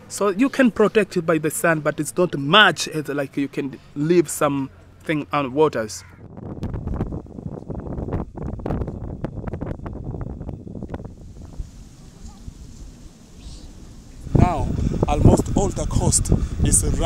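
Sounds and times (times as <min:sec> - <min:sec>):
wind buffeting microphone: 0:06.0 - 0:17.0.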